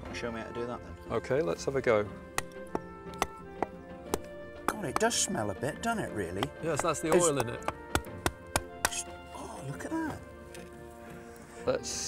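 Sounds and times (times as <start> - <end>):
background music with held notes: 0.0 - 12.0
tool knocking on rock: 2.3 - 5.3, 6.3 - 9.0.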